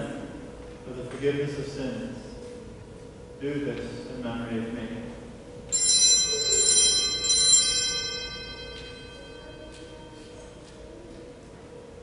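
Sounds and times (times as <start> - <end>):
altar bells ringing: 5.7 - 10.7.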